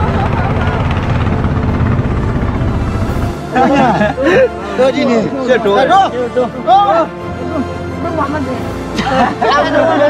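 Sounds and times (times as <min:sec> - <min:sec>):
boat engine chugging: 0:00.0 - 0:06.5.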